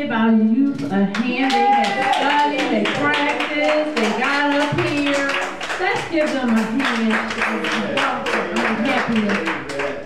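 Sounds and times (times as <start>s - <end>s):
congregation clapping in rhythm: 1.1s - 10.0s.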